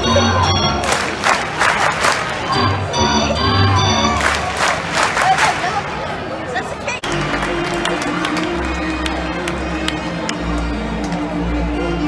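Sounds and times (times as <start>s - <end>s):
organ playing held notes: 0.0s - 1.3s, 2.4s - 4.6s.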